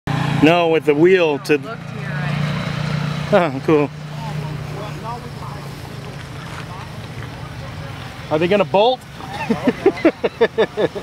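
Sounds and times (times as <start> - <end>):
faint voices talking: 0.4 - 11.0.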